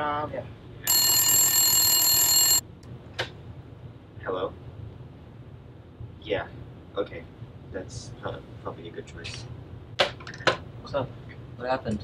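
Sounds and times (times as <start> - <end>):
telephone ringing: 0.9 - 2.6.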